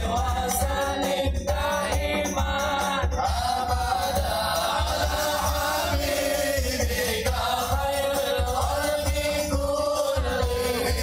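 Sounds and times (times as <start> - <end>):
voices chanting a slow melody: 0.0 - 11.0.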